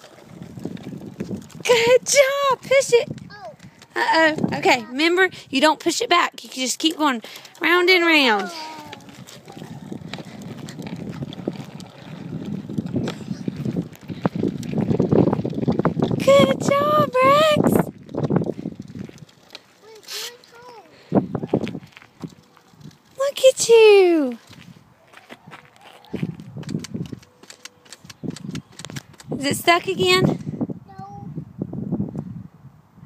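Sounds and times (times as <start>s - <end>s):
bike rattling over concrete: 0.0s - 30.5s.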